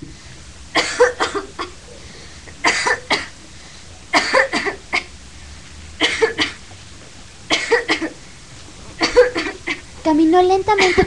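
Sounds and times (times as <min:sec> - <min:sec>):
girl coughing: 0:00.8 - 0:01.8, 0:02.6 - 0:03.4, 0:04.1 - 0:05.1, 0:06.0 - 0:06.6, 0:07.5 - 0:08.2, 0:09.0 - 0:09.8, 0:10.8 - 0:11.0.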